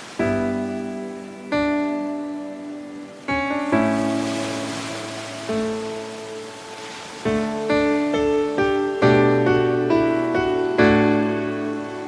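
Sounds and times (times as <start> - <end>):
soft hiss: 0.0 - 9.1
soft instrumental music: 0.0 - 12.0.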